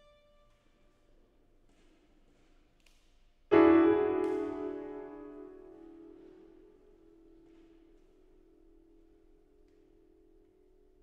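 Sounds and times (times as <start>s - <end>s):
piano note ringing: 3.5s - 6.2s.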